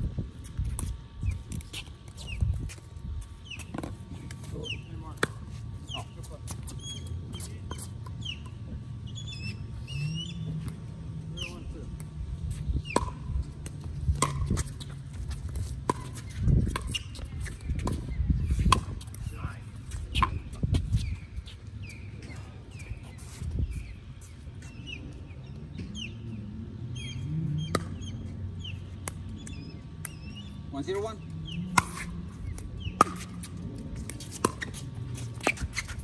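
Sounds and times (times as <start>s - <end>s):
birds chirping: 3.3s - 13.0s, 16.2s - 34.8s.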